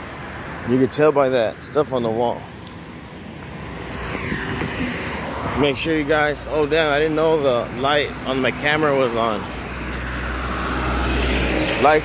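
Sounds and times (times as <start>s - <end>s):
car passing with tyre hiss: 3.6s - 12.0s.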